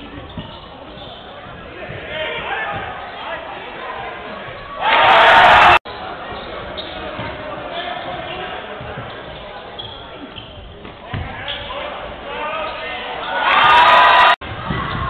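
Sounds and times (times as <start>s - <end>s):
crowd noise: 0.0s - 15.0s
voices echoing: 0.0s - 15.0s
basketball bouncing on court: 10.3s - 11.3s.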